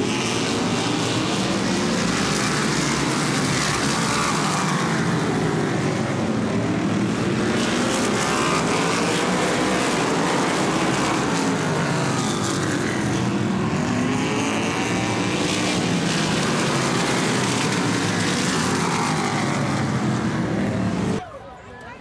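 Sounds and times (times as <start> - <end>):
race car engines: 0.0 - 22.0.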